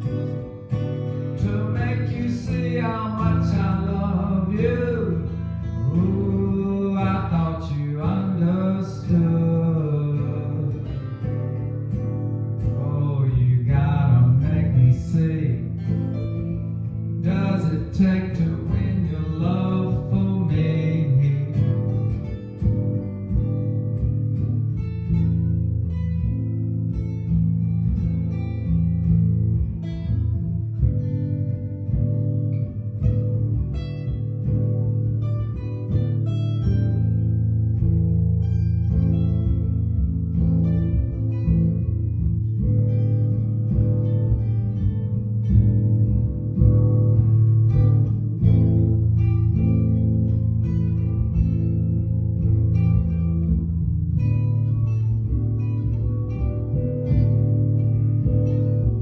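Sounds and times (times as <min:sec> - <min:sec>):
two guitars playing: 0:00.0 - 0:59.0.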